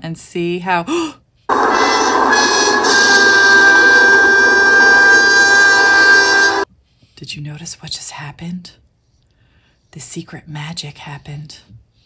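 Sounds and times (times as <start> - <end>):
sustained magic chord effect: 1.5 - 6.6.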